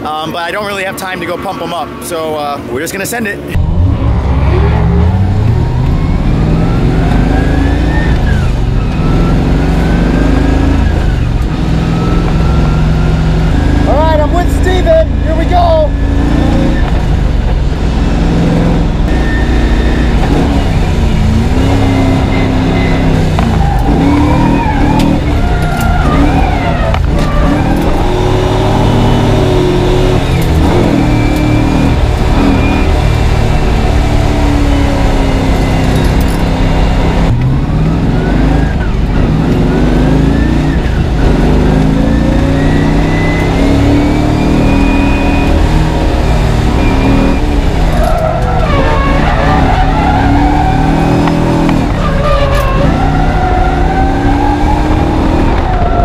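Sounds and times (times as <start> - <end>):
car engine revving: 0.0 - 56.0.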